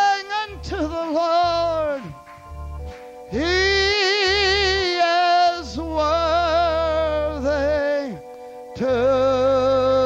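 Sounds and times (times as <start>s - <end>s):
instrumental accompaniment: 0.0s - 10.0s
low bass pulse: 0.5s - 4.9s.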